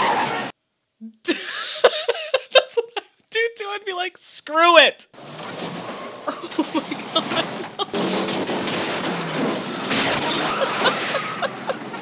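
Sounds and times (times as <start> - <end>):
cars clattering down stone steps: 5.2 - 12.0.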